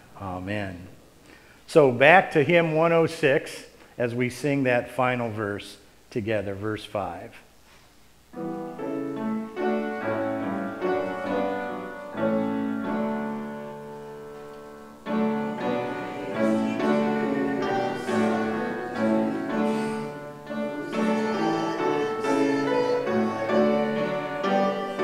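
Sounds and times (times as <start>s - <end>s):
piano playing a slow hymn: 8.3s - 25.0s.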